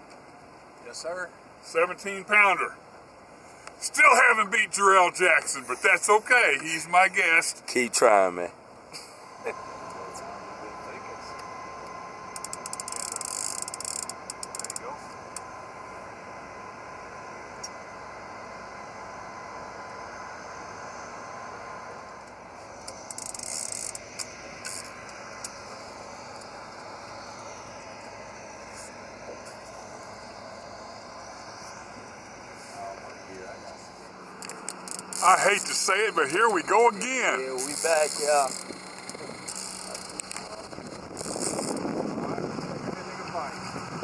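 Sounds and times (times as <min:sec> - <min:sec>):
steady mechanical hum: 0:00.0 - 0:44.0
fishing reel clicking: 0:12.4 - 0:14.8, 0:23.0 - 0:24.9, 0:34.4 - 0:35.8, 0:37.6 - 0:41.8.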